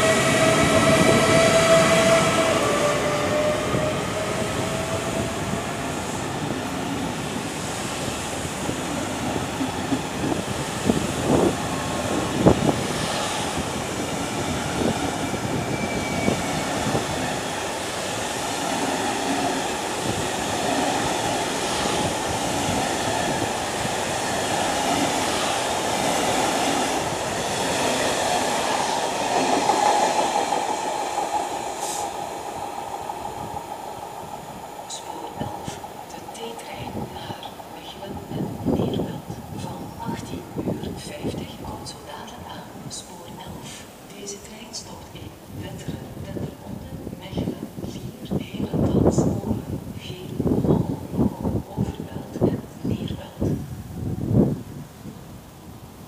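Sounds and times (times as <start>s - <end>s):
train wheels rumbling on rail: 0.0s - 44.0s.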